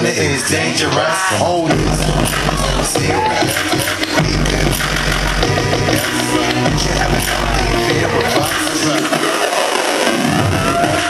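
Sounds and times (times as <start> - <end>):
loud electronic club music: 0.0 - 11.0
deep bass hit: 1.7 - 8.6.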